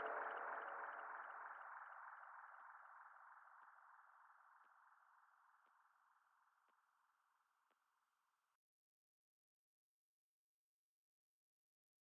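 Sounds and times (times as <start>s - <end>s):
faint electronic tone: 0.0s - 3.5s.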